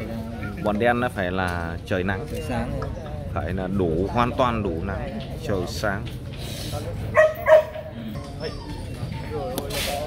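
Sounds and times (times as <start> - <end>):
dog barking: 7.1 - 7.9.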